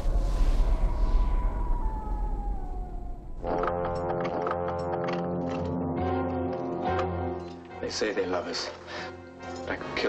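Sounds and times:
deep steady rumble: 0:00.0 - 0:04.2
whining tone falling in pitch: 0:00.0 - 0:04.3.

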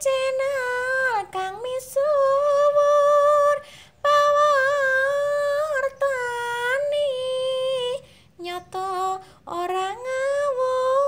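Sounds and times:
woman singing long notes: 0:00.0 - 0:11.0.

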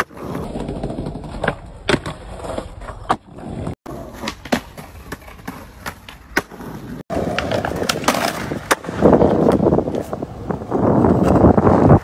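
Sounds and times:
skateboard wheels rolling on pavement: 0:00.0 - 0:12.0
skateboard clacking on ground: 0:03.9 - 0:12.0.

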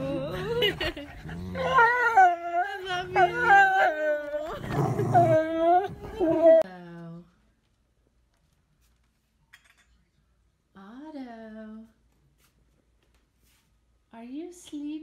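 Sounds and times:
dog howling and whining: 0:01.2 - 0:06.6.

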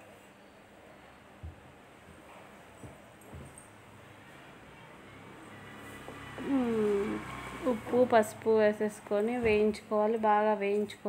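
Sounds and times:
woman speaking: 0:06.4 - 0:11.0.

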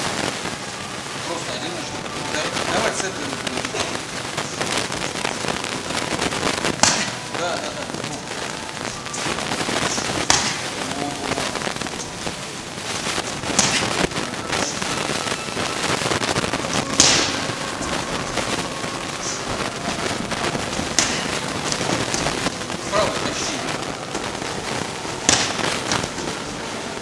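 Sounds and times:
gym background noise: 0:00.0 - 0:27.0
gloves punching focus mitts: 0:06.7 - 0:07.2, 0:09.2 - 0:10.8, 0:13.1 - 0:14.2, 0:16.9 - 0:17.4, 0:20.9 - 0:22.4, 0:25.2 - 0:26.2.

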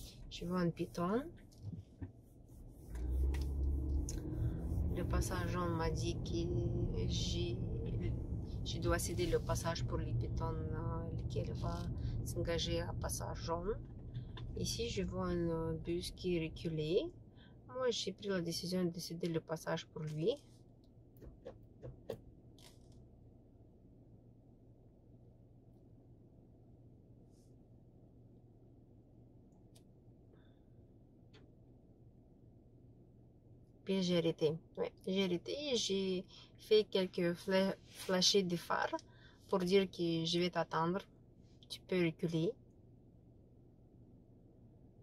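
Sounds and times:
car rumble from inside cabin: 0:00.0 - 0:17.2
faint low hum: 0:00.0 - 0:45.0.

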